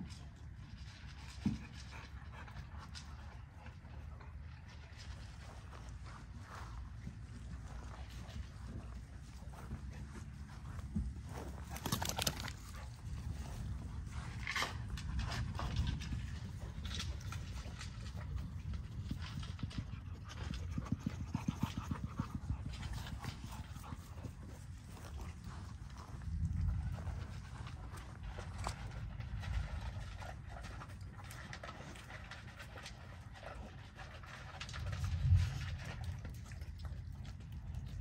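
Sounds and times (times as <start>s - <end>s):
dogs playing and scuffling: 0.0s - 38.0s
paws tapping and scraping ground: 0.0s - 38.0s
dog panting: 1.2s - 4.7s, 19.3s - 26.1s.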